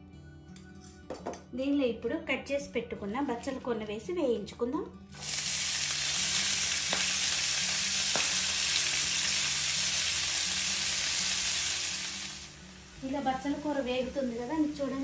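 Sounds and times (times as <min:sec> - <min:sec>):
leaves sizzling in hot oil: 0:05.2 - 0:15.0.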